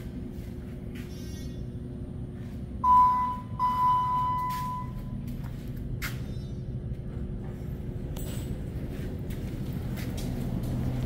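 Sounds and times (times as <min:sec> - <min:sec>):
steady low hum: 0:00.0 - 0:11.0
elevator arrival chime dings: 0:02.8 - 0:05.3.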